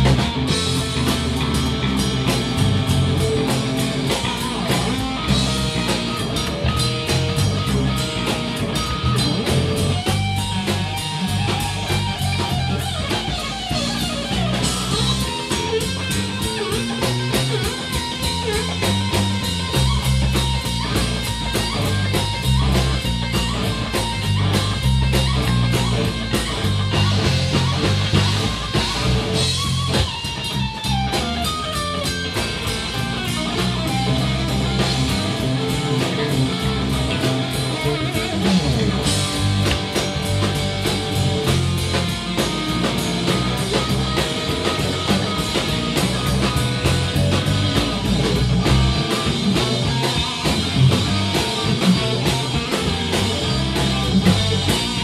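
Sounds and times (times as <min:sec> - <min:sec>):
bass guitar: 0:00.0 - 0:55.0
drum kit: 0:00.0 - 0:55.0
electric guitar: 0:00.0 - 0:55.0
funk blues rock band playing: 0:00.0 - 0:55.0.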